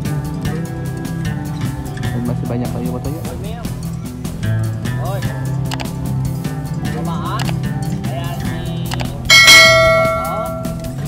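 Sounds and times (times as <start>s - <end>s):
background music with beat: 0.0s - 11.0s
notification bell chime: 9.3s - 10.8s.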